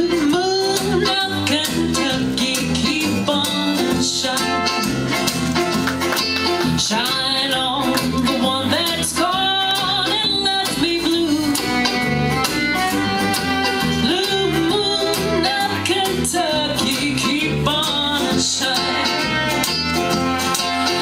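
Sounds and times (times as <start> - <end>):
acoustic guitar: 0.0 - 21.0
bluegrass band playing: 0.0 - 21.0
mandolin: 0.0 - 21.0.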